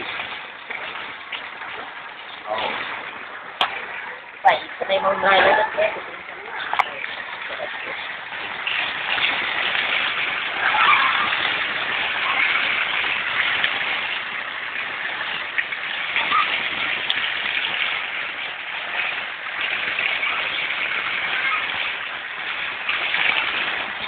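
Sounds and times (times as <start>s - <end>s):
floodwater running: 0.0s - 24.0s
heavy rain hissing: 0.0s - 24.0s.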